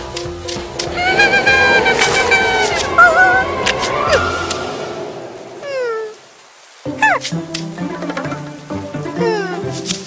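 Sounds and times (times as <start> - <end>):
background music: 0.0 - 5.2, 6.7 - 10.0
cartoon falling tone: 1.0 - 3.5, 7.0 - 7.2.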